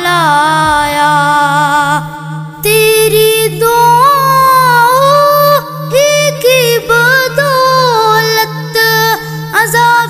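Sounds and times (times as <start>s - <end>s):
person singing a long note: 0.0s - 10.0s
pulsing low drone: 0.0s - 10.0s.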